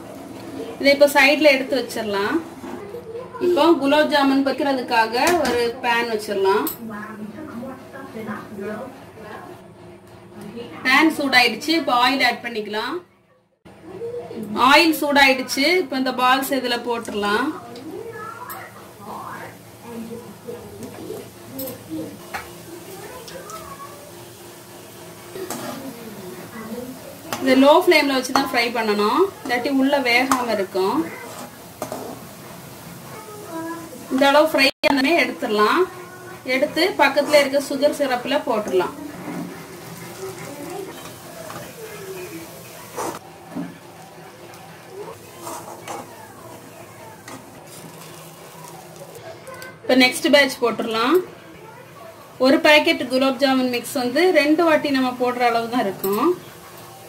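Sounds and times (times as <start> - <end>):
hot oil bubbling and sizzling: 14.9 - 51.6, 52.2 - 57.0
faint voices: 17.2 - 57.0.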